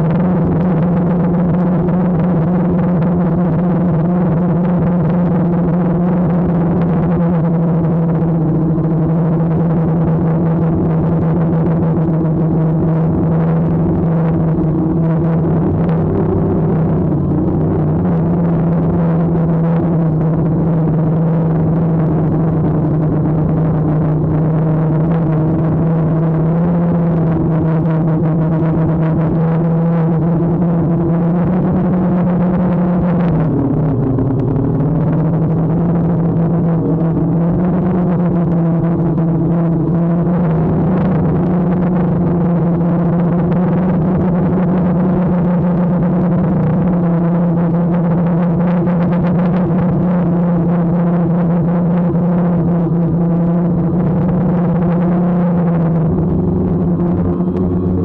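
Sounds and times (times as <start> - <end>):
drone propellers whining: 0.0 - 58.0.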